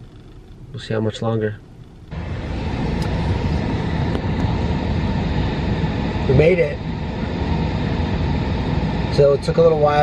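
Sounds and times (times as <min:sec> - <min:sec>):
car air conditioning fan: 0:00.0 - 0:10.0.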